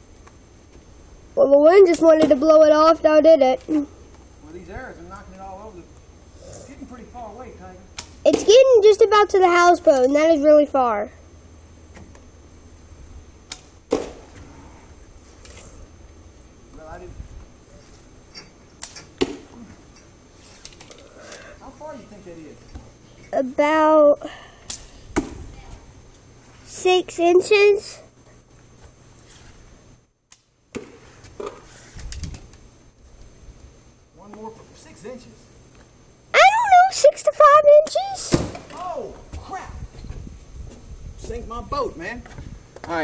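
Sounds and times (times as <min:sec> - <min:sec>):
bowstring snapping on release: 0:08.0 - 0:08.2, 0:13.5 - 0:14.2, 0:18.8 - 0:19.4, 0:24.6 - 0:25.3, 0:30.3 - 0:30.5.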